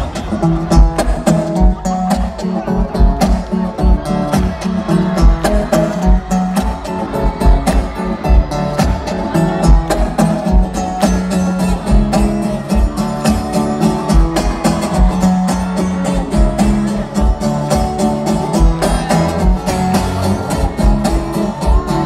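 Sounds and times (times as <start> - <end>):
acoustic guitar strummed: 0.3 - 22.0.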